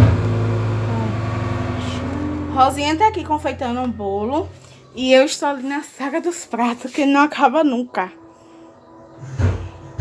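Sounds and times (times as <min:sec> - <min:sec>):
machine hum: 0:00.0 - 0:05.1.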